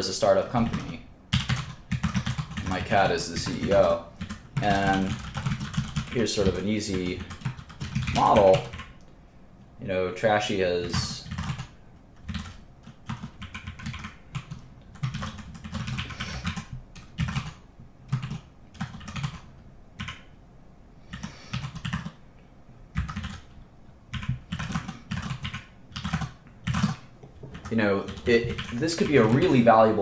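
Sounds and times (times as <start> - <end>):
computer keyboard typing: 0.6 - 9.0, 10.8 - 20.3, 21.1 - 22.2, 22.9 - 29.8.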